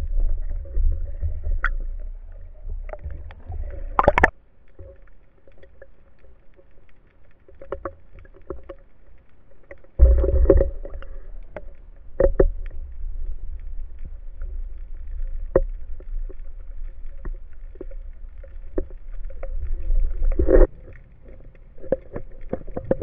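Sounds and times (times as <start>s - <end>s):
underwater rumble of moving water: 0.0s - 23.0s
clicks and knocks: 2.9s - 4.3s.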